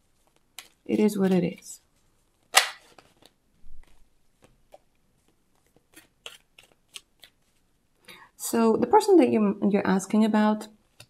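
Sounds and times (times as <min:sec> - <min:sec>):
cards slapping: 0:02.5 - 0:03.3.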